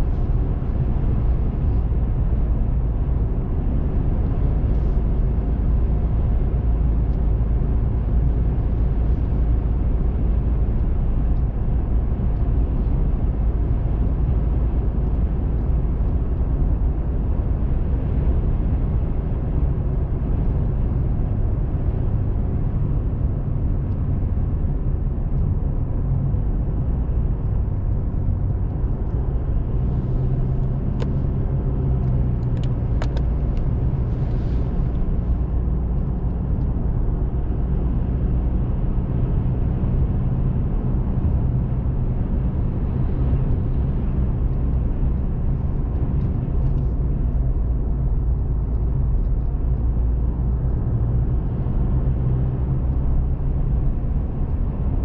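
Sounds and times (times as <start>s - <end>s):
car driving interior rumble: 0.0s - 55.0s.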